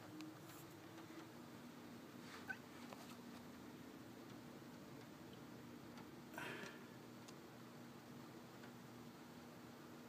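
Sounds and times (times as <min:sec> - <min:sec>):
faint rain on glass: 0:00.0 - 0:10.0
low steady hum: 0:00.0 - 0:10.0.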